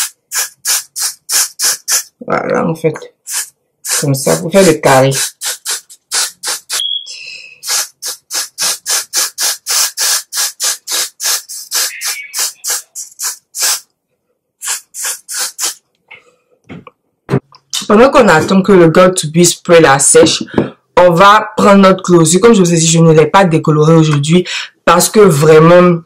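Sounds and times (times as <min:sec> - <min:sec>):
aerosol spray bursts: 0:00.0 - 0:02.1, 0:03.3 - 0:06.9, 0:07.6 - 0:13.9, 0:14.6 - 0:15.8.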